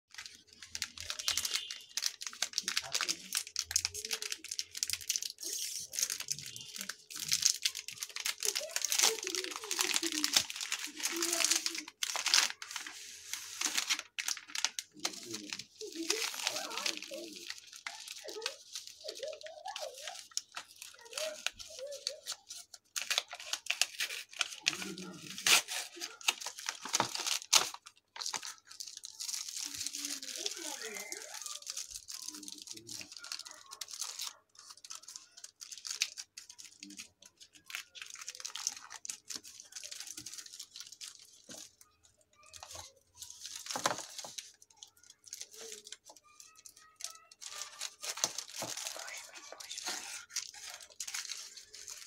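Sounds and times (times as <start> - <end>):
paper wrapper rustling: 0.1 - 52.0
plastic wrappers crinkling and tearing: 0.1 - 52.0.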